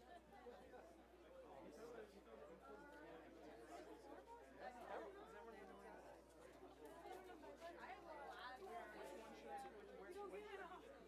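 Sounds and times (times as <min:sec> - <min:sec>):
chatter of many people: 0:00.0 - 0:11.0.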